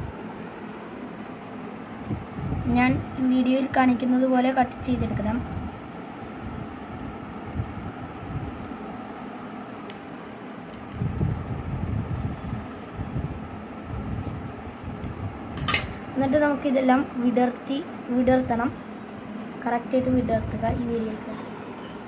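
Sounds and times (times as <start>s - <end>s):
paper rustling: 5.6s - 11.2s
scissors snipping paper: 8.2s - 11.1s.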